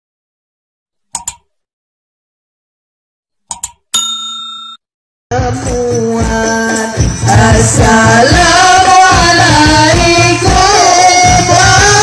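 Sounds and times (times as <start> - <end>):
mouse clicks: 1.1 - 1.5, 3.5 - 3.8
notification bell ding: 3.9 - 4.9.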